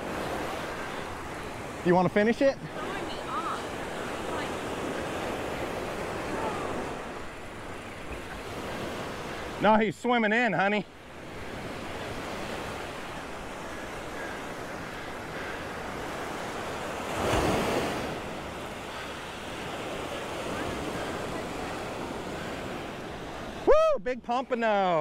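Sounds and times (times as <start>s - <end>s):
surf washing onto beach: 0.0s - 25.0s.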